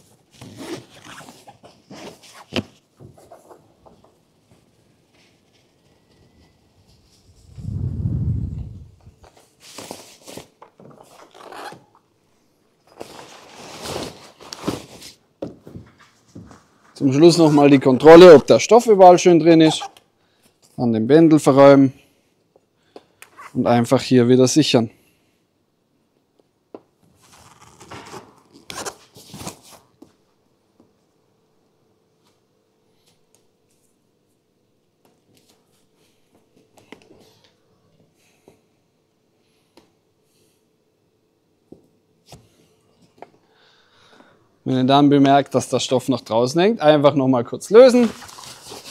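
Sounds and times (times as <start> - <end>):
nylon tent fabric rustling: 47.8 - 48.9.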